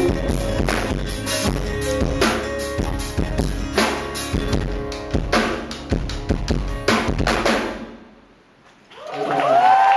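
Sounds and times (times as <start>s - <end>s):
live rock band playing: 0.0s - 8.2s.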